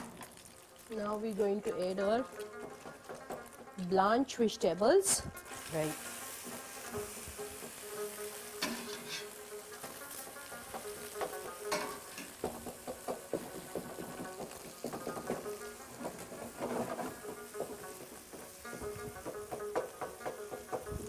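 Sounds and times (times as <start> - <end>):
food sizzling in a wok: 0.0 - 21.0
spatula scraping and knocking pan: 1.7 - 3.8, 5.4 - 21.0.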